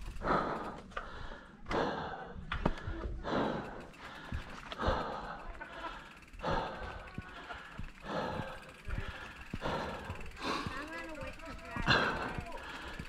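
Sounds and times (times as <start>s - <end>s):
bike tyres on dirt trail: 0.0s - 13.0s
heavy breathing: 0.0s - 13.0s
bike knocking on rough trail: 2.4s - 3.2s, 3.8s - 13.0s.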